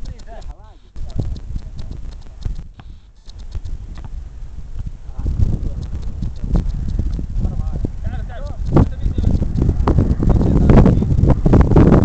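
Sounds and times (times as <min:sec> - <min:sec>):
low thuds: 0:00.0 - 0:12.0
low rumble: 0:01.0 - 0:12.0.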